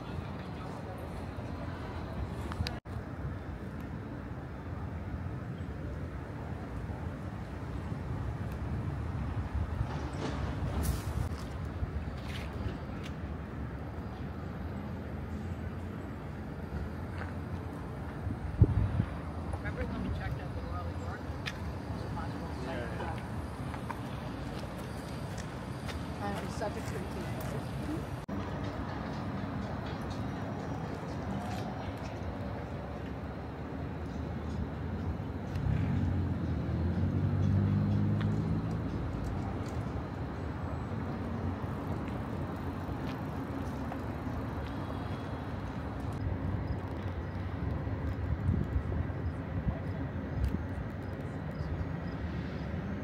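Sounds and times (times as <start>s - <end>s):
city background noise: 0.0s - 53.0s
distant traffic: 0.0s - 53.0s
wind buffeting microphone: 6.3s - 13.0s, 17.0s - 32.9s, 41.5s - 52.0s.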